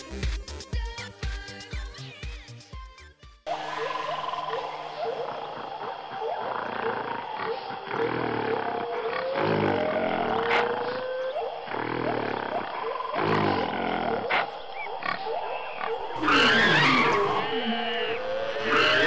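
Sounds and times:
shrill monster cry: 0:03.5 - 0:19.0
monster roaring and growling: 0:04.8 - 0:19.0.

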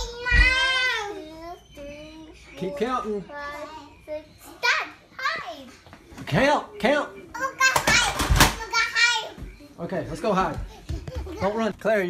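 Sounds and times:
children talking and calling out: 0:00.0 - 0:11.7.

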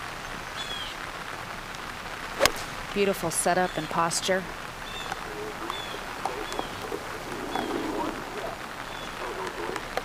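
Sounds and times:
steady rain falling: 0:00.0 - 0:10.0
faint murmuring voices: 0:05.0 - 0:10.0.

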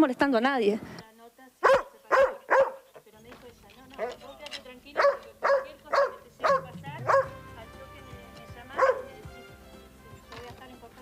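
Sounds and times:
young dog barking: 0:01.6 - 0:02.9, 0:05.0 - 0:07.4, 0:08.7 - 0:09.2.

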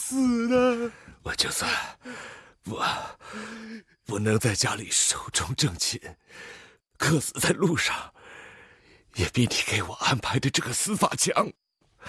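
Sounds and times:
old man gasping breaths: 0:02.0 - 0:02.6, 0:03.2 - 0:03.9, 0:08.2 - 0:09.0.

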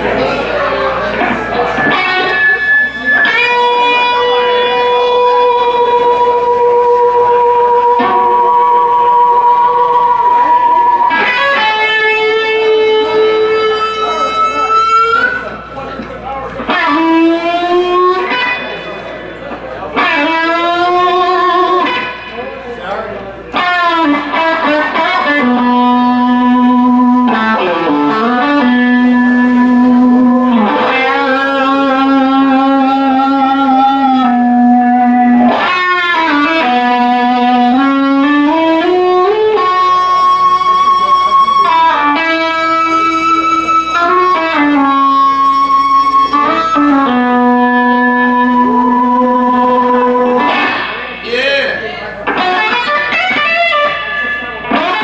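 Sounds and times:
rock band playing live: 0:00.0 - 0:22.6, 0:23.5 - 0:51.2, 0:52.2 - 0:55.0
electric guitar sliding notes: 0:00.0 - 0:55.0.

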